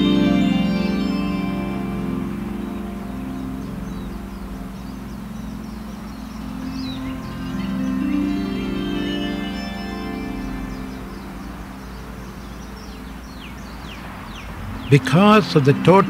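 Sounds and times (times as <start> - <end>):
soft slow background music: 0.0 - 16.0.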